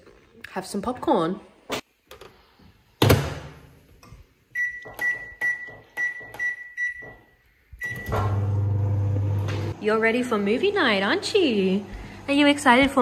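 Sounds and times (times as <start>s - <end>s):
keypad beeps: 4.6s - 7.2s
microwave oven humming: 7.8s - 13.0s.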